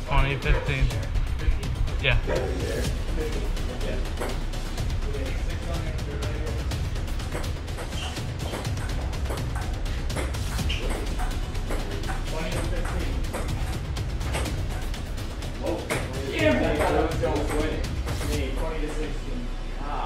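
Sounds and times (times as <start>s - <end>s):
music: 0.0s - 20.0s.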